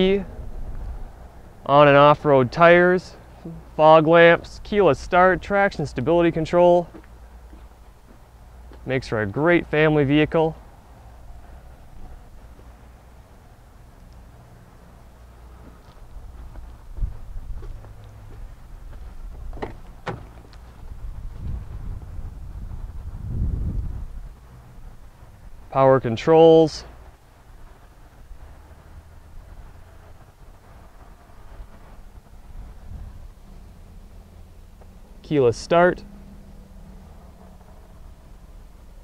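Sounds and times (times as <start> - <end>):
low rumbling noise: 0.0 - 39.0
car cabin hum and rumble: 10.7 - 24.8.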